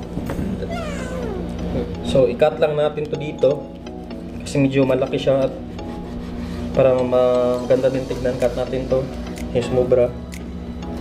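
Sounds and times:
background music: 0.0s - 11.0s
cat meowing: 0.7s - 1.6s.

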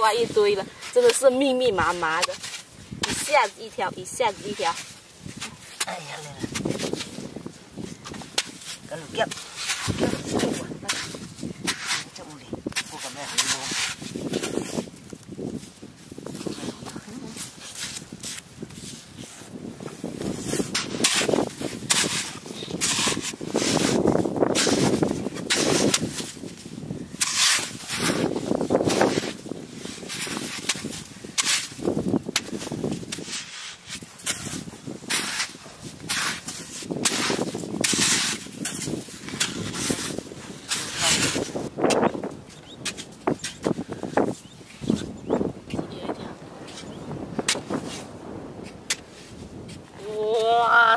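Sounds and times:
hoe chopping into clay mud: 20.5s - 26.4s, 47.4s - 47.9s.

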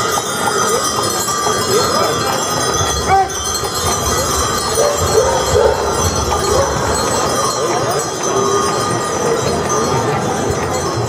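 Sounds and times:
harness bells jingling: 0.0s - 11.0s.

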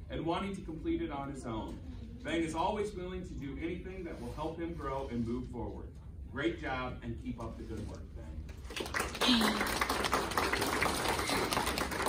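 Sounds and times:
audience clapping: 8.5s - 12.0s.

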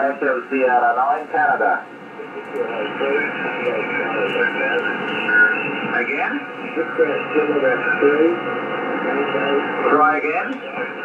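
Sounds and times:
radio voices through speaker: 0.0s - 11.0s.

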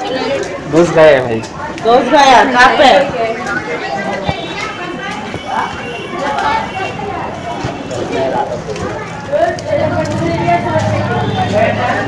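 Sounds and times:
indistinct voices talking: 0.0s - 12.0s.

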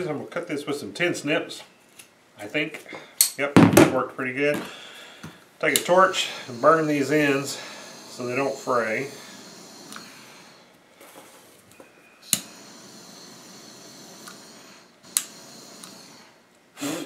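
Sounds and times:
butane torch hissing: 4.6s - 11.6s, 12.2s - 17.0s
sharp clicks: 15.1s - 16.0s.

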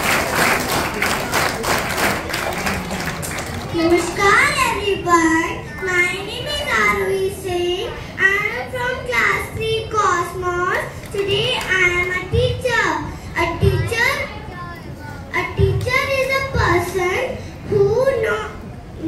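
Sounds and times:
girl speaking into a microphone: 3.6s - 19.0s.

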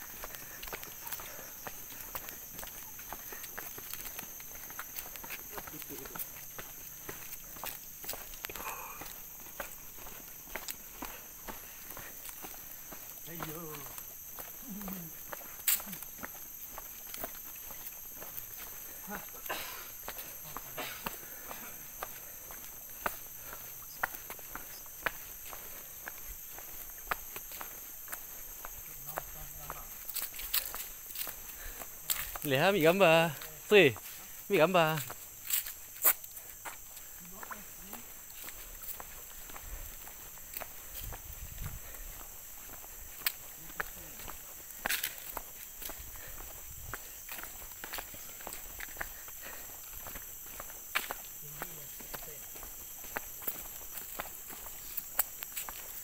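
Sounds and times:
footsteps on leaves and pavement: 0.0s - 56.0s.

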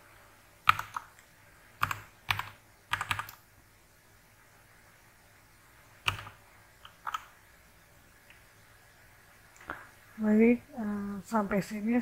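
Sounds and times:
keyboard typing: 0.6s - 3.5s, 6.0s - 7.4s.

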